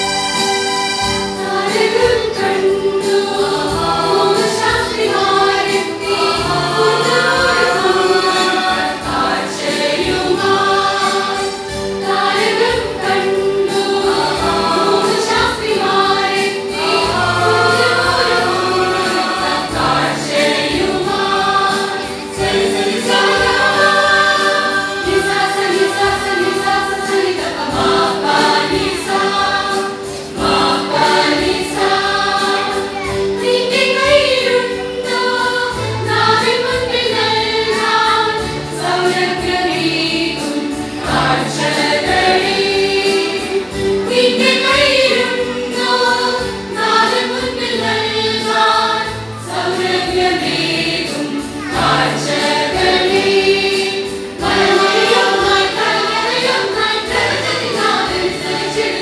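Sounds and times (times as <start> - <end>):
church choir singing: 0.0 - 59.0
instrumental accompaniment with beat: 0.0 - 59.0.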